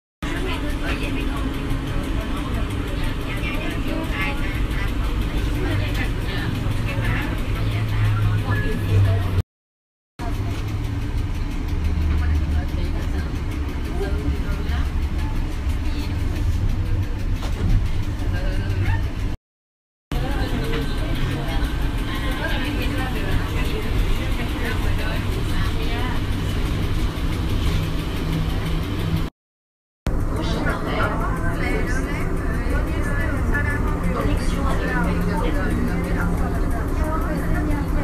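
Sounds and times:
indistinct voices: 0.2 - 9.4, 10.2 - 19.4, 20.1 - 29.3, 30.1 - 38.0
road noise: 0.2 - 9.4, 10.2 - 19.4, 20.1 - 29.3, 30.1 - 38.0.

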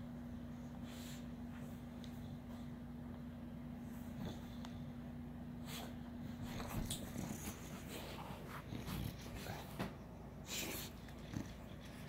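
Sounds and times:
dog snuffling and breathing: 0.5 - 3.0, 3.7 - 12.0.

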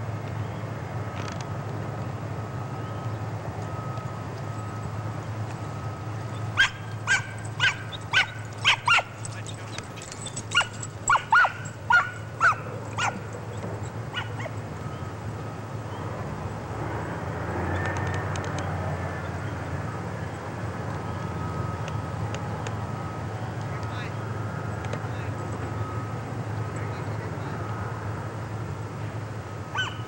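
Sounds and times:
dog barking: 6.6 - 9.5, 10.5 - 13.3, 14.1 - 14.6, 29.7 - 30.0.

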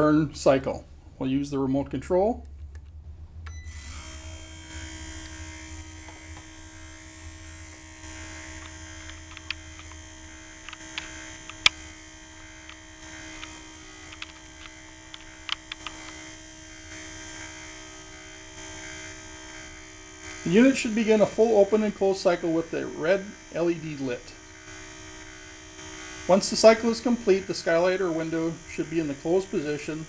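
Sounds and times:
window motor humming: 3.5 - 30.0
sharp clicks: 8.6 - 10.0, 10.6 - 11.9, 12.6 - 16.2.

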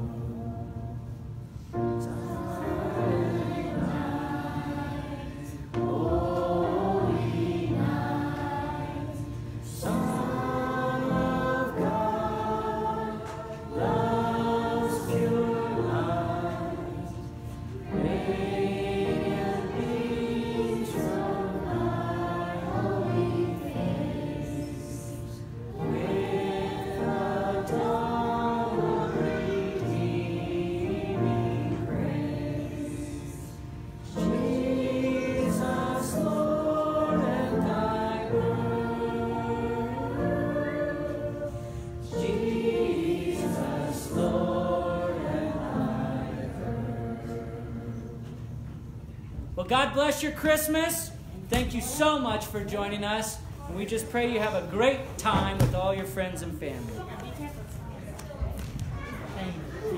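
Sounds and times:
group singing slow hymn: 0.0 - 49.5.

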